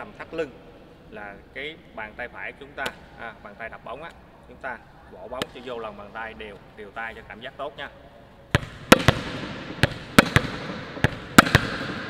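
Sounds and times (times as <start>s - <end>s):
volleyball bouncing on court: 8.5s - 12.0s
volleyball slapped into palm: 8.5s - 12.0s.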